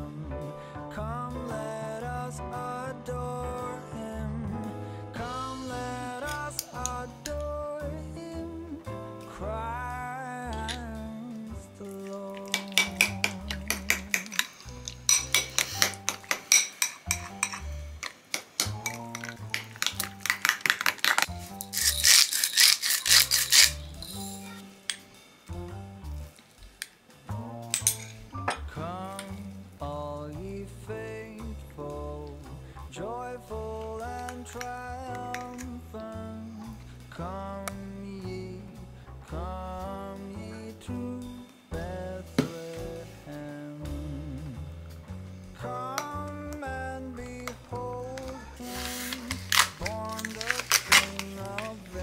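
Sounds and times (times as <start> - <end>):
background music: 0.0 - 52.0
spoon clinking and scraping glass: 12.4 - 25.1, 27.7 - 28.6, 48.2 - 52.0.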